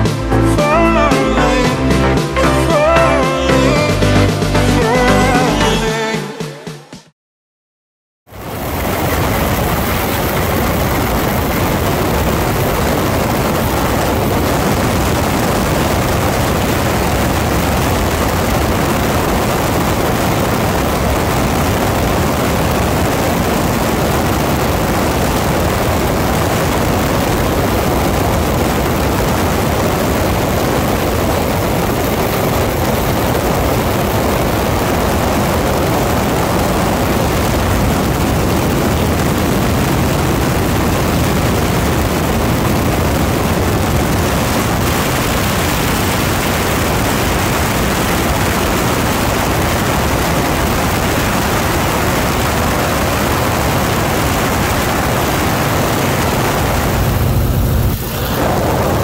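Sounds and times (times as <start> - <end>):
radial engine drone: 8.4 - 59.0
slipstream wind rushing: 8.4 - 59.0.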